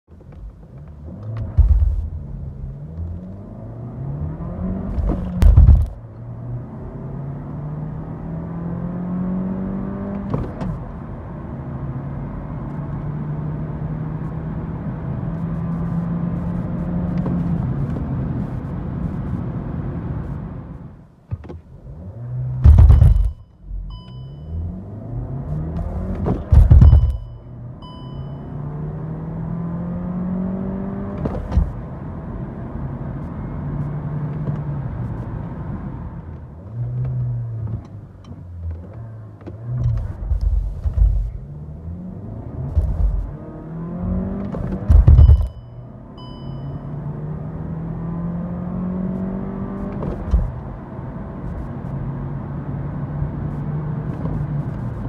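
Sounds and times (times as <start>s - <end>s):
car engine revving at full throttle: 1.0s - 19.2s, 21.8s - 23.4s, 24.5s - 27.3s, 28.6s - 45.6s, 47.0s - 55.0s
loud thumps: 1.4s - 2.2s, 4.9s - 6.0s, 22.6s - 23.4s, 25.8s - 27.3s, 42.7s - 43.3s, 44.5s - 45.6s
short electronic beeps: 22.9s - 24.8s, 26.8s - 28.6s, 45.2s - 47.0s.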